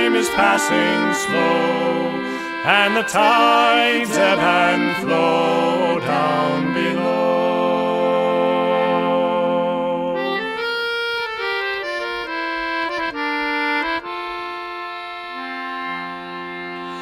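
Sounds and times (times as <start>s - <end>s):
accordion melody: 0.0s - 17.0s.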